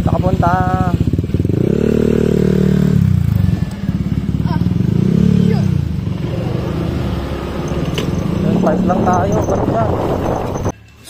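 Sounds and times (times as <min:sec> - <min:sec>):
scooter engine running: 0:00.0 - 0:10.7.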